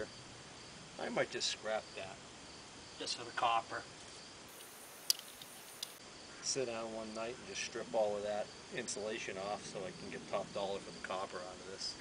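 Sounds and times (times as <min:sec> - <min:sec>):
crickets trilling: 0:01.7 - 0:03.6, 0:04.2 - 0:06.4, 0:08.3 - 0:11.7
sharp clicks: 0:04.5 - 0:06.0.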